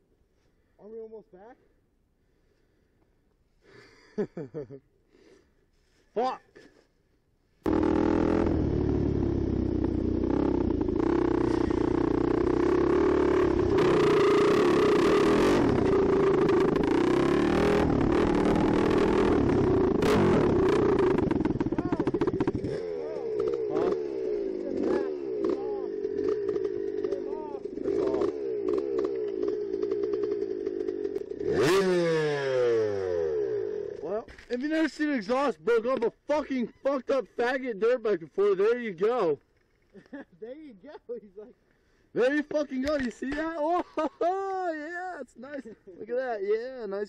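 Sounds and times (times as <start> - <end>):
dirt bike engine running: 7.7 - 34.5.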